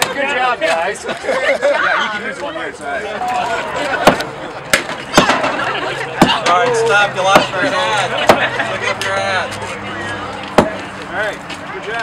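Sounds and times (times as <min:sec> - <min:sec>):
people's voices: 0:00.0 - 0:12.0
hammers striking concrete wall: 0:04.0 - 0:05.5.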